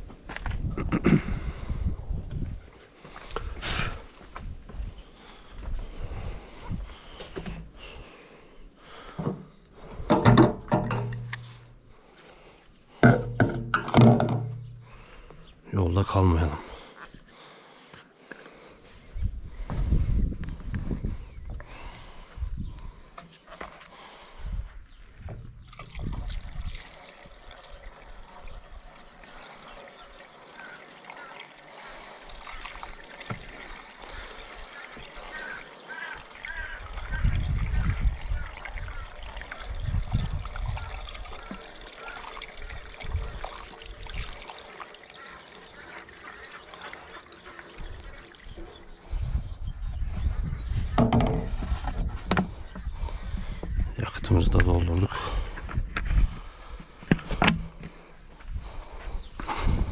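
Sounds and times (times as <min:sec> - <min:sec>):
fuel pouring through a funnel: 0:18.4 - 0:59.9.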